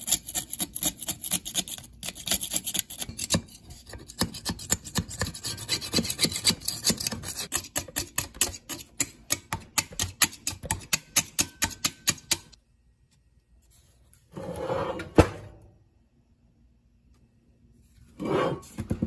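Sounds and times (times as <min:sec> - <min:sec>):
blade scraper scraping metal: 0:00.0 - 0:12.6.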